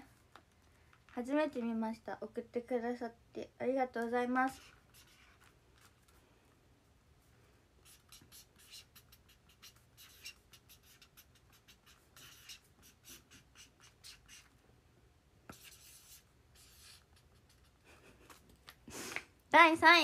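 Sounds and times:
faint scratching and rustling: 0:04.4 - 0:06.6.

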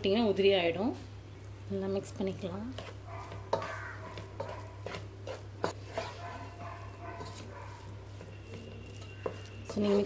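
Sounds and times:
spatula stirring rice in a pot: 0:02.6 - 0:10.0.

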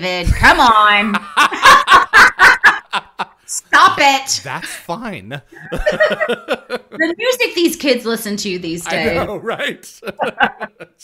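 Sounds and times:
person laughing: 0:01.0 - 0:03.4, 0:04.5 - 0:07.2, 0:10.0 - 0:11.0.

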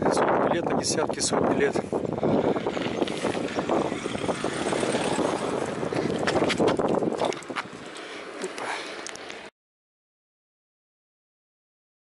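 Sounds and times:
wind on microphone: 0:00.0 - 0:08.0.

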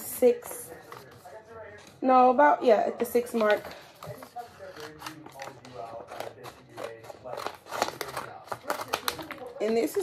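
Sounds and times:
plastic sheet crinkling: 0:03.4 - 0:10.0
scissors snipping vinyl: 0:04.7 - 0:10.0.

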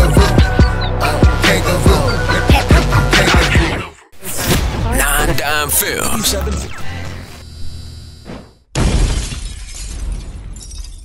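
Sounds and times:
music: 0:00.0 - 0:04.1.

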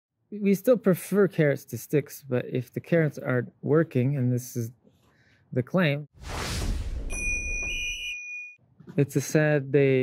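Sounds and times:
low rumble: 0:06.2 - 0:08.0
whoosh: 0:06.2 - 0:08.0
high steady ringing tone: 0:07.1 - 0:08.6.

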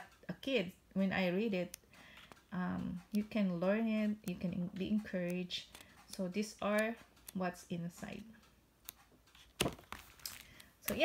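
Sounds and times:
book pages flipping: 0:04.1 - 0:06.2, 0:08.8 - 0:11.0
book set down tapping: 0:09.6 - 0:10.4.

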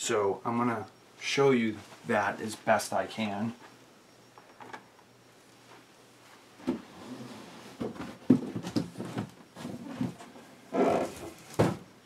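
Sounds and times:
box thud on table: 0:11.6 - 0:11.8.

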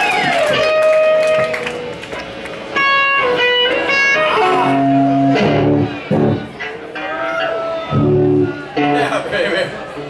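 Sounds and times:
electric guitar ringing notes: 0:02.7 - 0:09.3.

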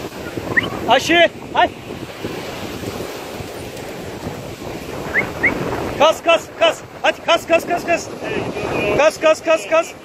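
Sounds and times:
surf breaking on sandy shore: 0:00.0 - 0:10.0
wind buffeting microphone: 0:00.0 - 0:10.0.

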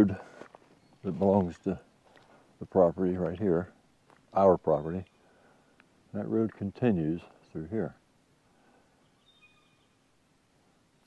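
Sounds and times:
faint high bird call: 0:09.0 - 0:10.0.

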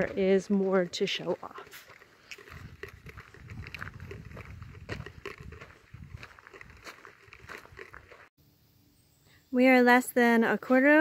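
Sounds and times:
footsteps crunching on gravel: 0:00.0 - 0:08.3
phone microphone handling rumble: 0:02.3 - 0:08.3.

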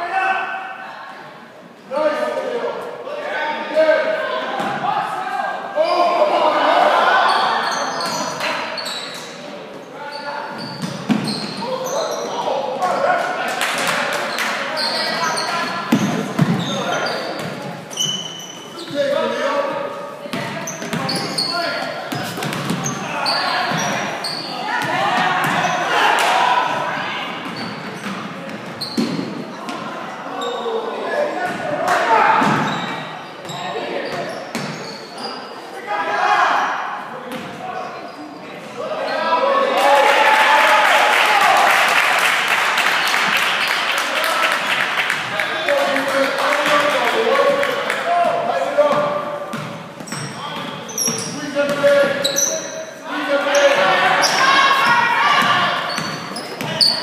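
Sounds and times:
people shouting in a hall: 0:00.0 - 0:01.3, 0:02.0 - 0:08.8, 0:22.8 - 0:27.4, 0:29.9 - 0:34.1, 0:35.2 - 0:37.1, 0:38.8 - 0:49.4, 0:52.3 - 0:57.0
voices shouting: 0:03.3 - 0:09.0, 0:20.6 - 0:27.5, 0:50.1 - 0:57.0
sneakers squeaking on gym floor: 0:07.3 - 0:12.5, 0:14.3 - 0:25.9, 0:27.0 - 0:30.8, 0:32.4 - 0:35.6, 0:48.8 - 0:57.0.

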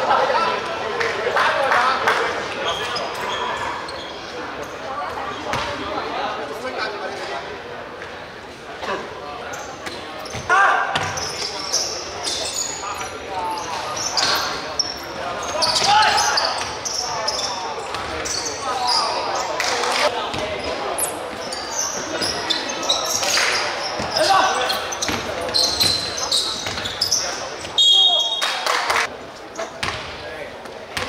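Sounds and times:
sneakers squeaking: 0:02.5 - 0:05.9, 0:08.9 - 0:28.7, 0:29.3 - 0:31.0
basketball bouncing: 0:11.0 - 0:11.2
players shouting: 0:15.4 - 0:17.6.

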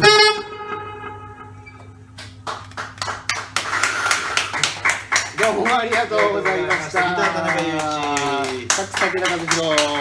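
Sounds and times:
saxophone and electric guitar: 0:00.0 - 0:02.1
audience clapping: 0:02.2 - 0:10.0.

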